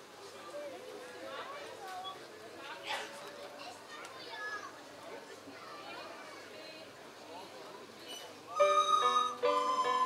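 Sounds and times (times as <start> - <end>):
children chattering: 0.4 - 10.0.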